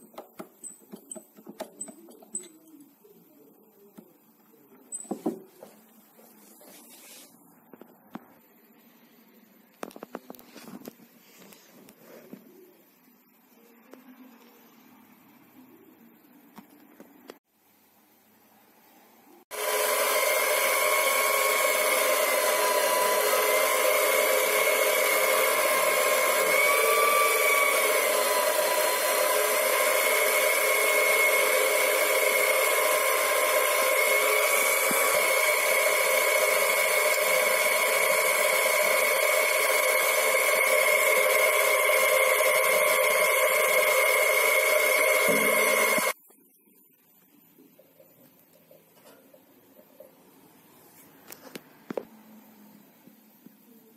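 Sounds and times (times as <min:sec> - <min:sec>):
lathe motor whine: 0:19.5 - 0:46.2.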